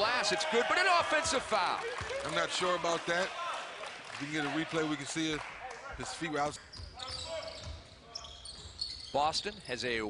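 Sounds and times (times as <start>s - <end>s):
sneaker squeaks: 6.6s - 9.8s.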